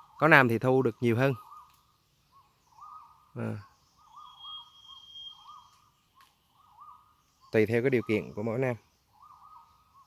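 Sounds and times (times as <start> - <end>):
bird whistling call: 1.0 - 10.0
thin high whistle: 4.2 - 5.7.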